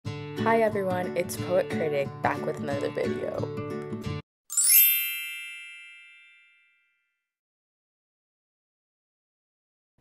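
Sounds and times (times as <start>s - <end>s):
bright chime ding: 4.5s - 7.0s.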